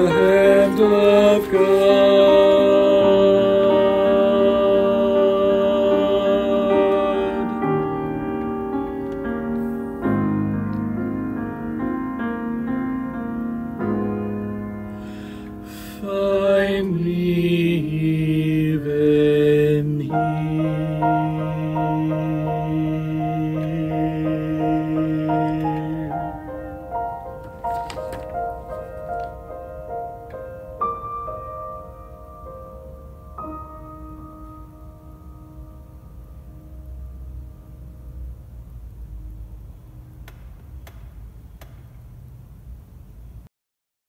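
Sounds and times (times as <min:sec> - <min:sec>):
choir singing a hymn in harmony: 0:00.0 - 0:08.3, 0:15.8 - 0:26.8
grand piano chord: 0:00.0 - 0:39.6.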